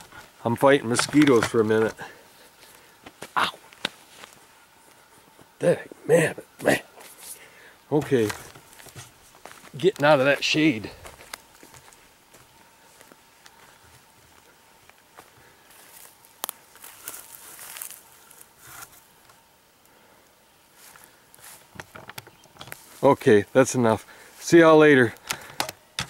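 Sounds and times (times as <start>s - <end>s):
footsteps through grass: 0.0s - 5.6s, 8.0s - 19.4s, 20.6s - 25.1s
footsteps crunching: 0.0s - 19.4s, 20.7s - 26.0s.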